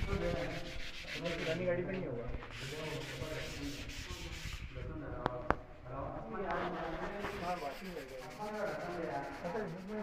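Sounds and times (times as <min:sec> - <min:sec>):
rubbing scraping noise: 0:00.0 - 0:05.0, 0:06.3 - 0:10.0.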